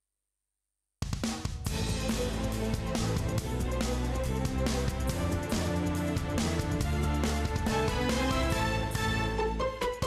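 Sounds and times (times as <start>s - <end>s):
steady drum beat: 1.0s - 10.0s
television theme music: 1.0s - 10.0s.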